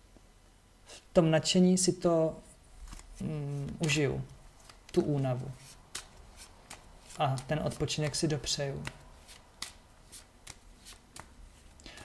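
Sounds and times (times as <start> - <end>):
cards being shuffled: 2.8 - 11.8
light snaps of cards: 5.9 - 12.0.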